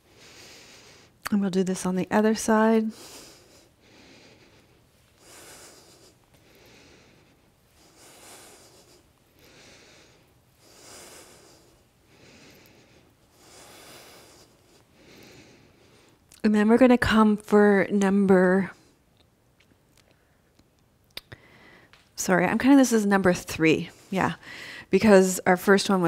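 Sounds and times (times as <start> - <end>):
woman breathing slowly: 0.0 - 1.3, 2.7 - 16.3, 21.3 - 22.2, 23.8 - 25.0.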